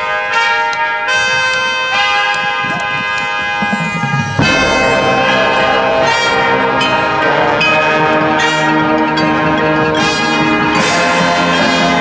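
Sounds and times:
marching band sustained chords: 0:00.0 - 0:12.0.

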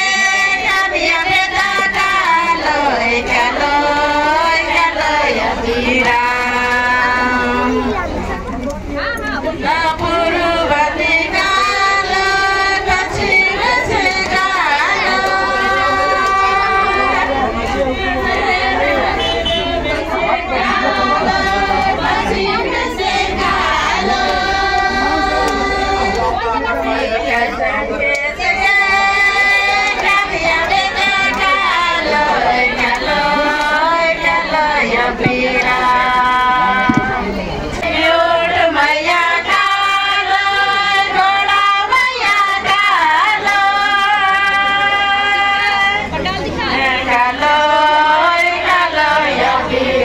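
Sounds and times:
women singing: 0:00.0 - 0:50.0.

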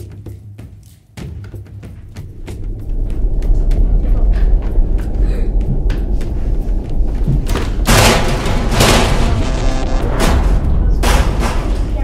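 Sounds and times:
deep rumbling drone: 0:02.2 - 0:12.0
loud bursts of noise: 0:07.8 - 0:11.5.

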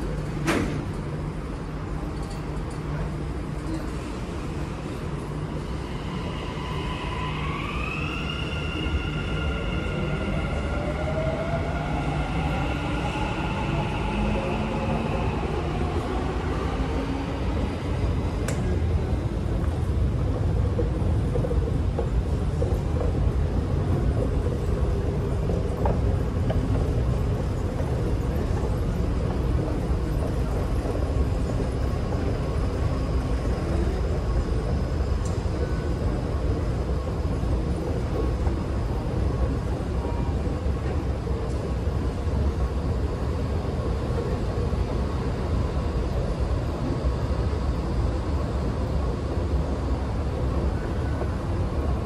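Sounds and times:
station background noise: 0:00.0 - 0:52.0.

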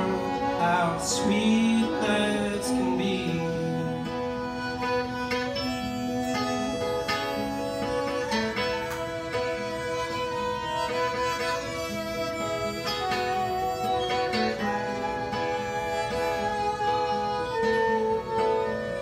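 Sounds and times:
fiddle melody: 0:00.0 - 0:19.0
plucked acoustic guitar: 0:00.0 - 0:19.0.

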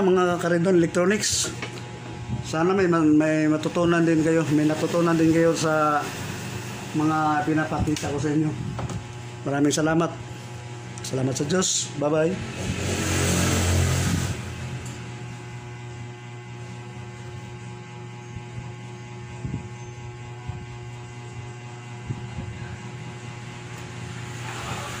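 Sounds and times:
electrical mains hum: 0:00.0 - 0:25.0.

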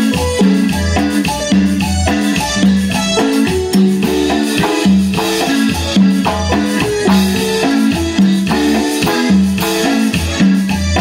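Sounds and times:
bass line: 0:00.0 - 0:11.0
electric guitar: 0:00.0 - 0:11.0
electronic keyboard: 0:00.0 - 0:11.0
percussion beat: 0:00.0 - 0:11.0.

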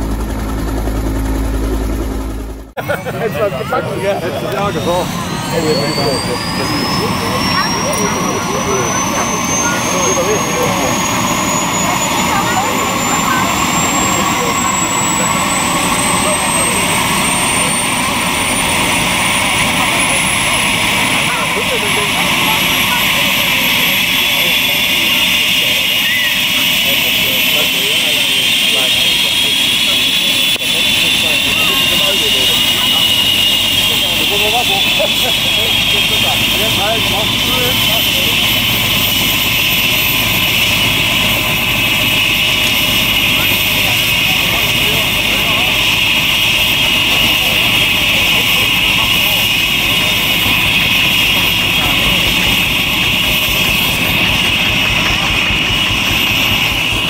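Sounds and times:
helicopter rotor speeding up: 0:00.0 - 0:57.0
helicopter turbine whine: 0:00.0 - 0:57.0.

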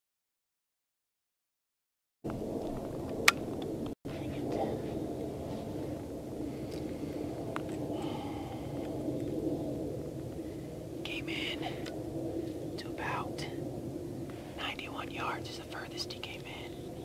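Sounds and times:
steady low background noise: 0:02.3 - 0:17.0
man whispering: 0:04.1 - 0:05.0, 0:11.0 - 0:11.9, 0:12.8 - 0:13.6, 0:14.6 - 0:17.0.

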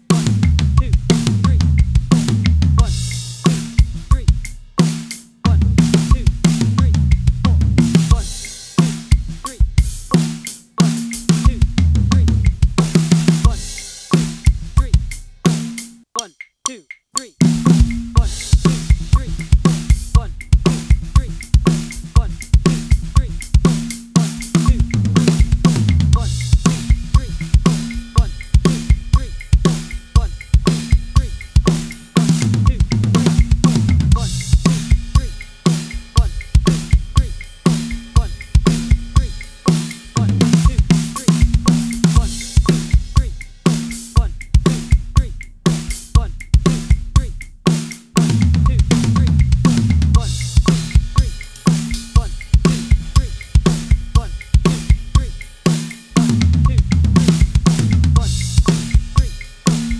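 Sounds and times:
drum kit fills: 0:00.0 - 0:16.4, 0:17.2 - 0:59.9.

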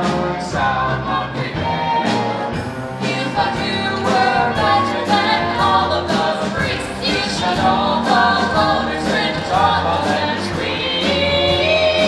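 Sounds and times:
instrumental accompaniment: 0:00.0 - 0:12.0
voices singing together: 0:00.0 - 0:12.0.

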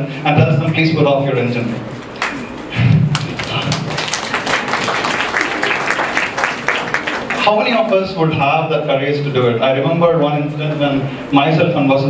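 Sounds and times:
audience applauding: 0:03.1 - 0:07.5.

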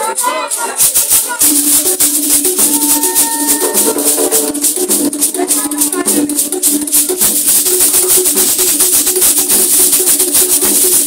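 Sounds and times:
gourd rattles shaken: 0:00.0 - 0:11.0.

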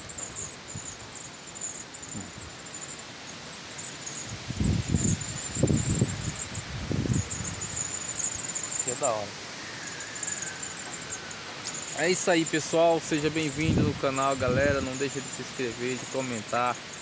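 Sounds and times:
insects trilling: 0:00.0 - 0:17.0.

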